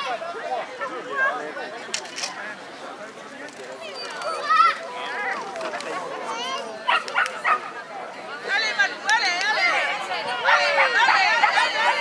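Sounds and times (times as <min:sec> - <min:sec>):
dog barking: 0:06.9 - 0:07.7.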